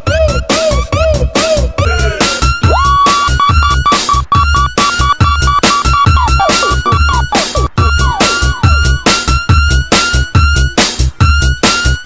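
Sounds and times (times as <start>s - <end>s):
deep bass beat: 0.0s - 12.0s
stuttering high synth note: 2.8s - 9.2s.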